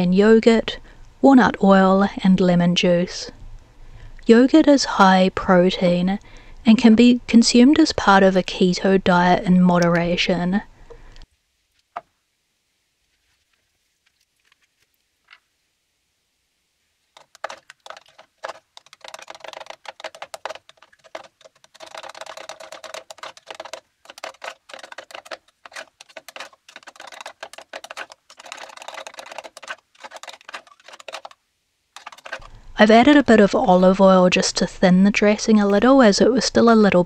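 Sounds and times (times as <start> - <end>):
spoon stirring in plastic cup: 17.2 - 31.4, 32.0 - 33.8.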